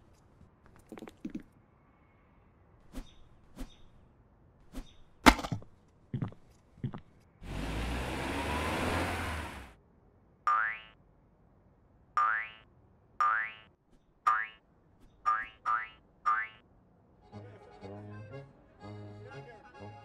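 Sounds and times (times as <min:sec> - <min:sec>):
cartoon boing sounds: 0:10.5 - 0:11.0, 0:15.3 - 0:16.6
music: 0:17.2 - 0:20.0.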